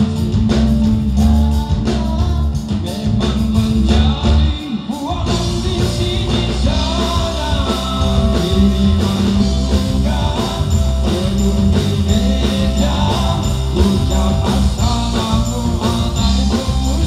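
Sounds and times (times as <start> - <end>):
electric guitar: 0.0 - 17.0
steady drum beat: 0.0 - 17.0
man singing into microphone: 0.8 - 17.0.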